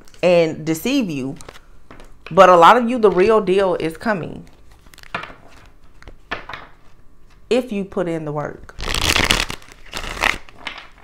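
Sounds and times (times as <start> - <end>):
cards being shuffled: 8.8 - 11.0.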